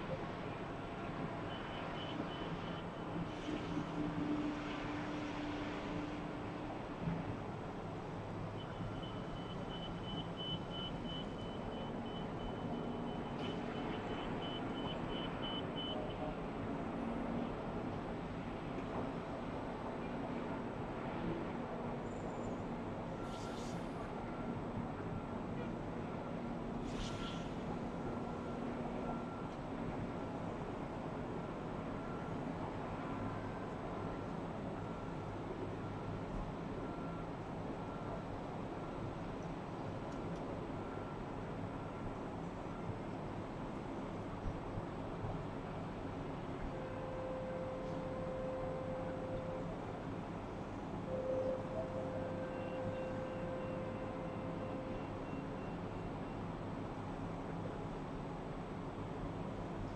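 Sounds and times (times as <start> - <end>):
distant road traffic: 0.0 - 59.9
brief hisses: 23.2 - 23.9, 26.8 - 27.6.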